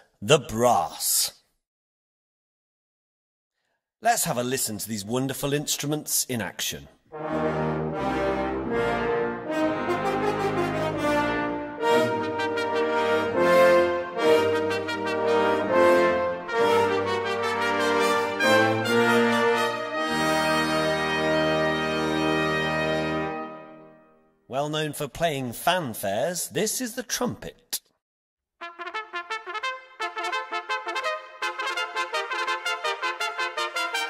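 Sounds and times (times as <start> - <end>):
brass ensemble playing chords: 7.1 - 24.1, 28.6 - 34.0.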